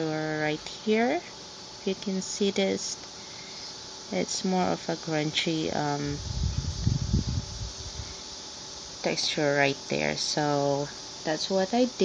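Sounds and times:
steady background hiss: 0.0 - 12.0.

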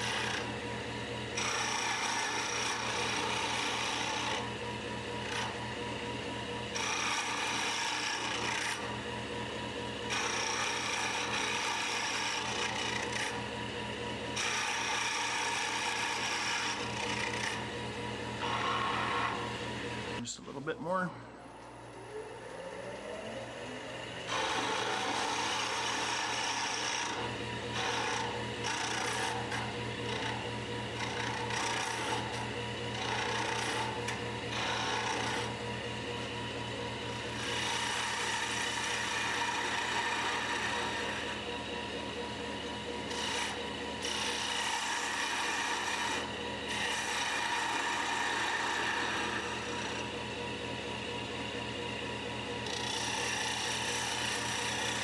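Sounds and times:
tool scraping wood on lathe: 0.0 - 0.6, 1.3 - 4.6, 5.2 - 5.6, 6.7 - 9.0, 10.1 - 13.4, 14.4 - 17.7, 18.4 - 20.5, 24.3 - 35.6, 37.2 - 41.5, 43.0 - 50.2, 52.6 - 55.0
lathe motor hum: 0.0 - 55.0.

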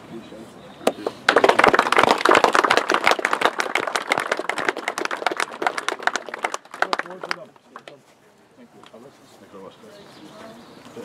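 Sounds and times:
group applause: 0.9 - 8.0.

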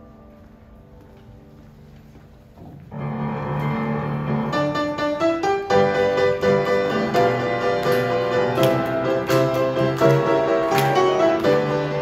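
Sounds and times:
piano music: 0.0 - 12.0.

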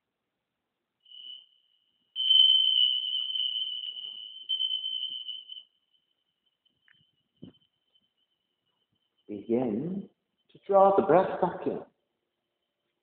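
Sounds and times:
high single-pitched tone: 2.2 - 5.7.

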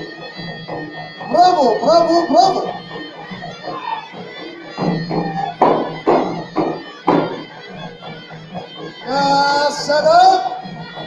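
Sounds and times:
frame drum beats: 0.0 - 11.0.

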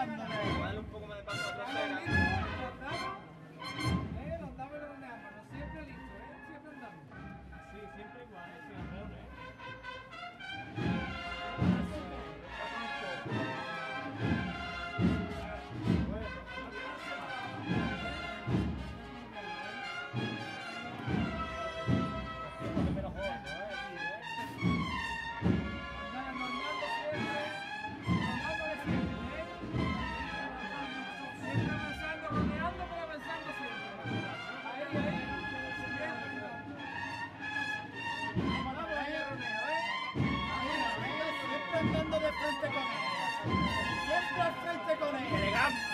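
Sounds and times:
steady drumbeat: 0.0 - 4.8, 8.6 - 45.9
brass band playing a march: 0.0 - 45.9.

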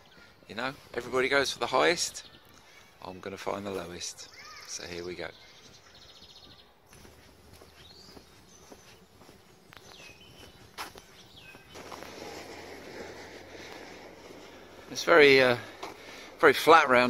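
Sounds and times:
bird chirps: 0.0 - 12.1
rustling: 10.8 - 17.0.

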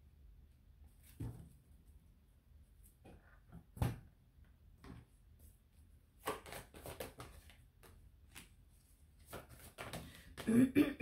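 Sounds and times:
cards being shuffled: 6.2 - 10.4.

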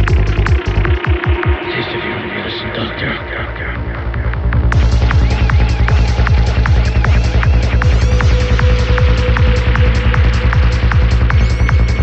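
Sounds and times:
kick drum: 0.0 - 1.6, 4.4 - 12.0
deep bass: 0.0 - 12.0.

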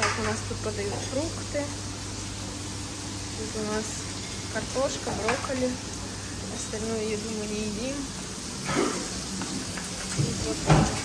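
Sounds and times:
dining room background hiss: 0.0 - 11.0.

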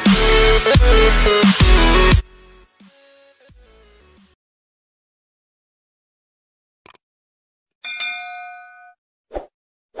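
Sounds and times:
notification bell ding: 7.8 - 9.0.

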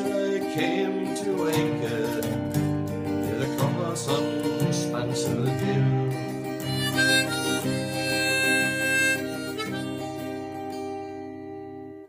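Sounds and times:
strummed acoustic guitar: 0.0 - 12.0
harmonica melody: 3.0 - 12.0.

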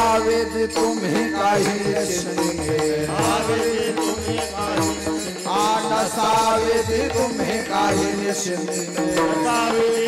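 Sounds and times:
hand cymbals beat: 0.0 - 10.0.

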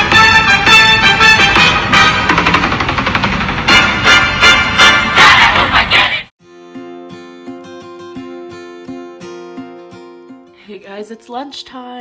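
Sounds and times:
music with repeated hits: 0.0 - 5.8.

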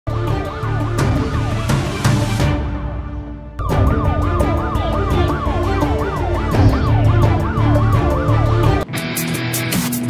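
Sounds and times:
electronic siren sweeping: 0.5 - 2.4, 3.6 - 8.8
steady tone: 3.6 - 8.8
music with drum beat and bass: 3.6 - 10.0.

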